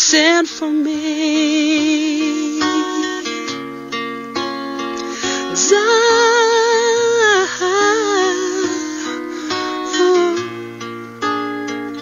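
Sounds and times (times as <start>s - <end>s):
person singing wordlessly: 0.0s - 3.4s, 5.2s - 10.6s
acoustic guitar chords: 0.0s - 12.0s.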